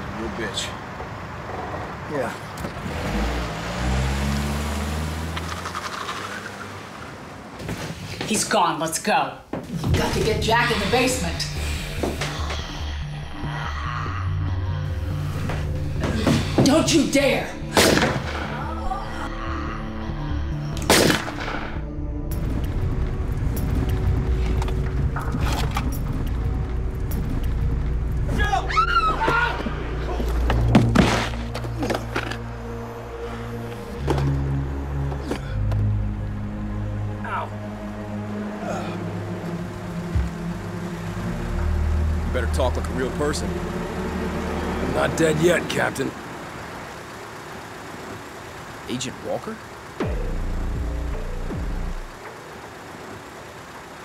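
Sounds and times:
dramatic film score drone: 9.8s - 54.0s
pistol shot: 17.8s - 18.3s, 20.9s - 21.6s
car engine running: 22.1s - 28.6s, 29.6s - 54.0s.

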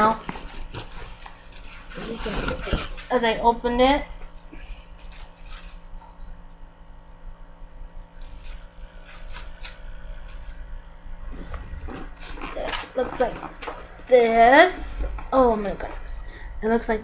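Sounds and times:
cardboard and paper rustling: 0.0s - 3.3s, 11.4s - 14.4s
low electrical hum: 0.0s - 17.0s.

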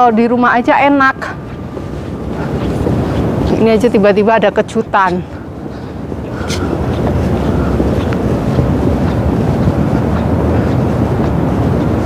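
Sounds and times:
wind rumbling on microphone: 0.0s - 12.0s.

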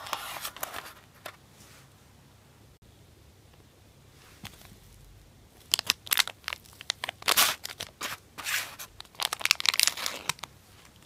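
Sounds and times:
plastic rustle: 5.6s - 11.0s
plastic tray crackling: 5.6s - 11.0s.

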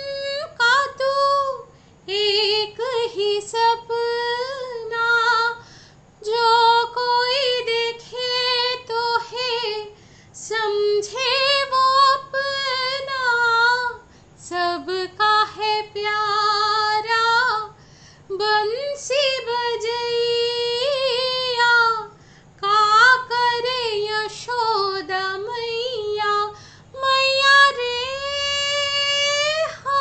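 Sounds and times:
woman singing unaccompanied: 0.0s - 5.6s, 6.2s - 30.0s.

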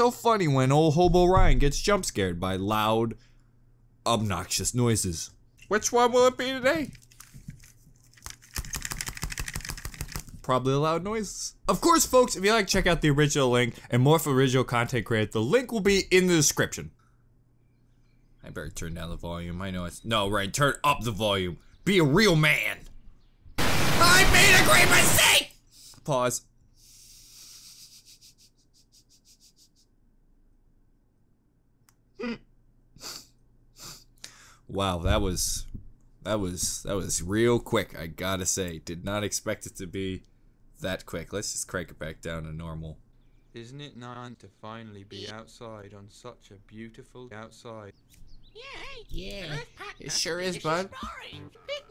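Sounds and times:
headphones clicking and knocking: 6.9s - 10.5s
hummed mm: 32.2s - 33.2s.

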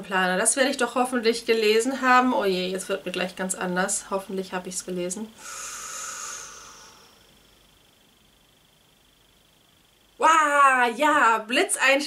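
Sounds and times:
woman sighing: 5.4s - 7.1s.

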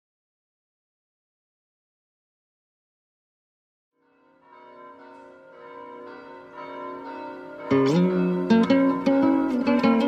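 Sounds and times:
bells ringing: 4.0s - 10.0s.

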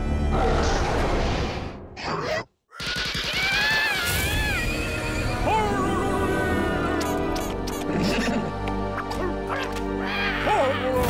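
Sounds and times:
cartoon background music: 2.8s - 11.0s.

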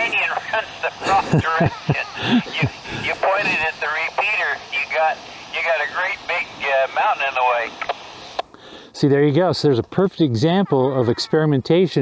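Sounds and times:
person talking over radio speaker: 0.0s - 8.4s, 9.6s - 12.0s
radio hiss: 0.0s - 12.0s.

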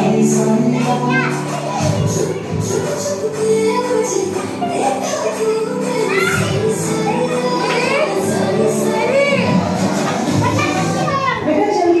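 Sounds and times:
background music: 0.0s - 12.0s
young children chattering: 0.0s - 12.0s.

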